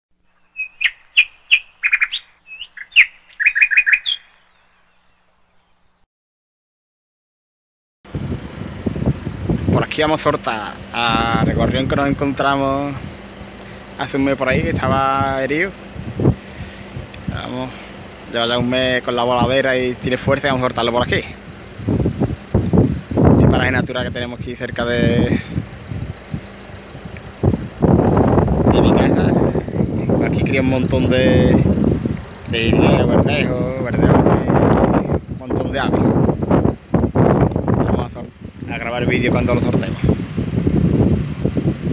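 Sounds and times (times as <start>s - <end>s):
steady outdoor noise: 0.2s - 6.0s, 8.1s - 41.9s
songbird chirping: 0.2s - 6.1s
wind buffeting microphone: 8.1s - 41.9s.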